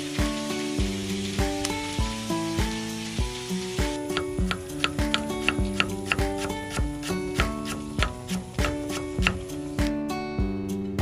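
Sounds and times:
chicken sizzling in a wok: 0:00.0 - 0:09.9
knife chopping on wooden board: 0:04.4 - 0:09.4.

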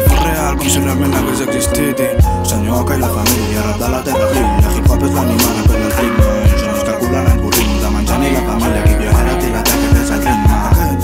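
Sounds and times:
deep bass: 0:00.0 - 0:11.0
hi-hats: 0:00.0 - 0:11.0.

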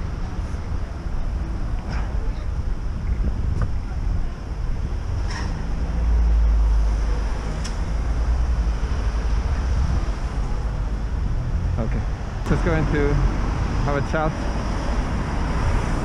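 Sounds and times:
wind on microphone: 0:00.0 - 0:06.4, 0:07.4 - 0:16.0
street traffic: 0:00.0 - 0:16.0.

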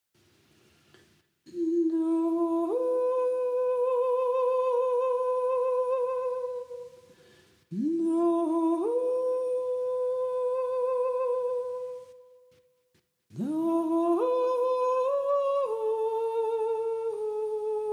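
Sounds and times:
woman humming: 0:01.5 - 0:07.0, 0:13.3 - 0:17.9.

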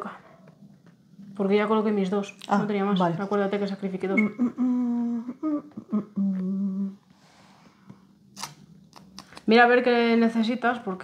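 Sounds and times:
person humming: 0:04.2 - 0:07.0.

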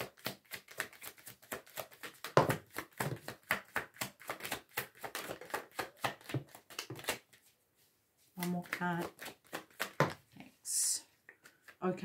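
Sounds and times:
cards being shuffled: 0:00.0 - 0:07.5, 0:08.3 - 0:10.4.

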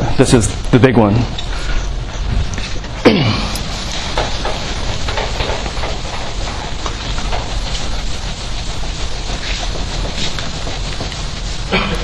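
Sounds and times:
eraser scrubbing a chalkboard: 0:03.6 - 0:12.0.

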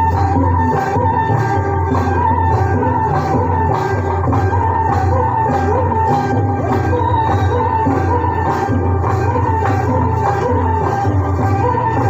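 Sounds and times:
high wavering melody: 0:00.0 - 0:12.0
steady drum beat: 0:00.0 - 0:12.0.

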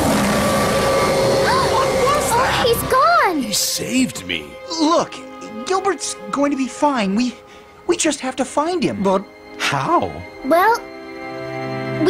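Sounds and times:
high squeaky gliding cries: 0:00.5 - 0:03.4.

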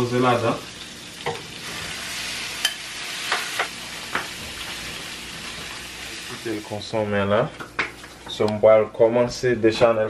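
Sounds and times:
meat sizzling in a frying pan: 0:00.0 - 0:06.8.

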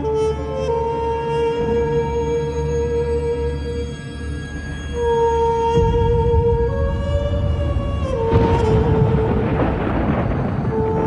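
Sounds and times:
dark held-note score: 0:00.0 - 0:11.0.

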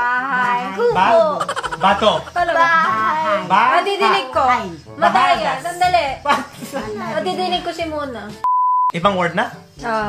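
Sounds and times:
high-pitched censor bleep: 0:08.4 - 0:09.0.

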